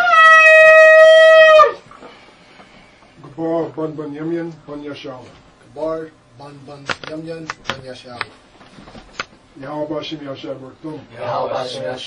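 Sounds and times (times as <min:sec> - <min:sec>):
shofar blast: 0:00.0 - 0:01.8.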